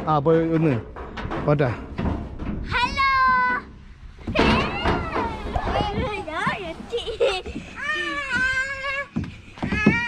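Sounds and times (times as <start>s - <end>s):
child crying out: 7.8s - 9.1s.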